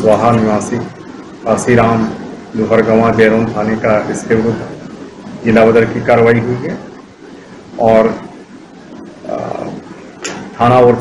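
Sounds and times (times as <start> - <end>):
man's voice: 0.0 - 4.7, 10.6 - 11.0.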